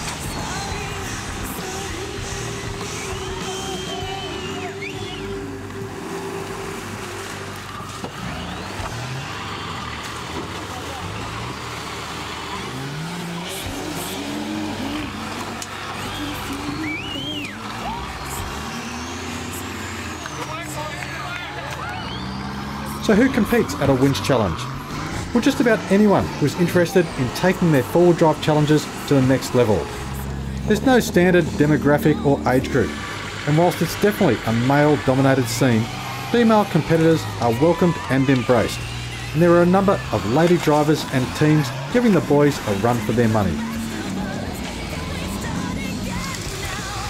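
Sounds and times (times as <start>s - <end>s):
off-road engines revving hard: 0.0s - 47.0s
voices shouting: 0.0s - 47.0s.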